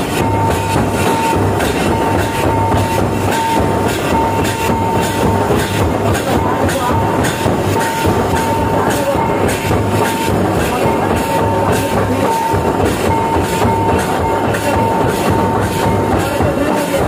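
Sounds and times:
fast hand drumming: 0:00.0 - 0:17.0.

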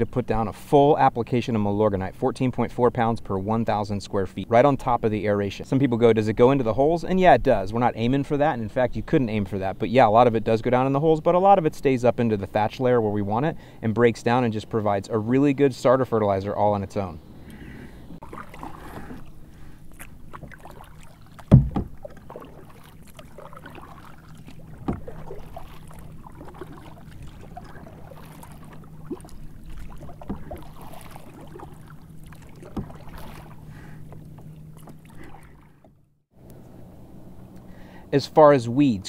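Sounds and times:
low hum: 0:16.2 - 0:38.3
paddle strikes on water: 0:18.2 - 0:19.3, 0:19.9 - 0:36.0
sharp knock: 0:21.5 - 0:21.9.

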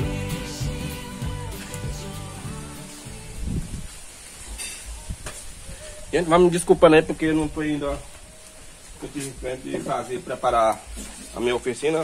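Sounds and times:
background music: 0:00.0 - 0:03.8.

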